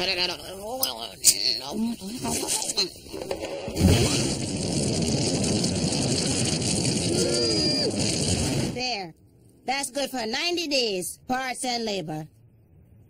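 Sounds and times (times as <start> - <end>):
person making wordless sounds: 0.0 - 3.0.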